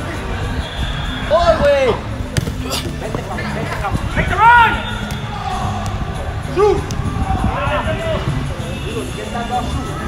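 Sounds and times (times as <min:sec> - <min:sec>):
soccer ball struck: 0:02.3 - 0:02.7.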